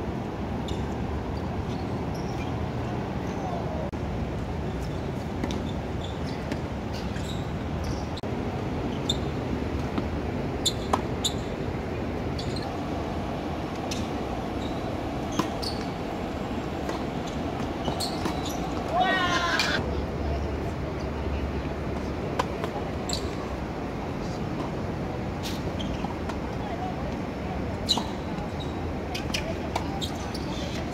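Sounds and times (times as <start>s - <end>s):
steady background hum: 7.6s - 25.4s
tennis balls struck and bouncing: 13.2s - 19.8s.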